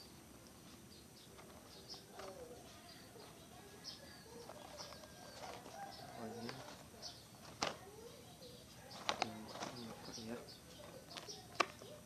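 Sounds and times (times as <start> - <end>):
faint bird chirps: 0.0 - 12.0.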